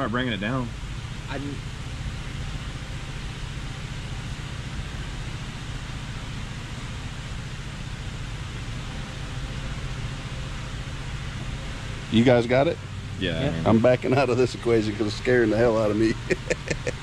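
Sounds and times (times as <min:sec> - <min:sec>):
low hum: 0:00.0 - 0:17.0
background hiss: 0:09.5 - 0:17.0.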